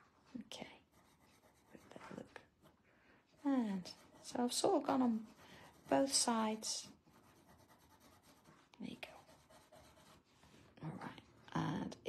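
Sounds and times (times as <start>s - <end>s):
drawing tool scratching paper: 0.9s - 2.4s, 3.4s - 10.3s.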